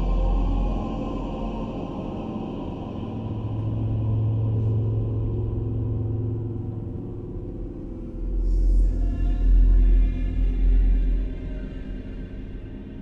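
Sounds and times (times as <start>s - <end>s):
dark ambient drone music: 0.0s - 13.0s.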